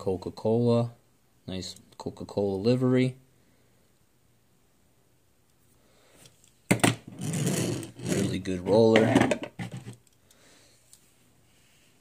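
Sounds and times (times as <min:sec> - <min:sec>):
toy car wheels rolling: 0:07.2 - 0:08.3.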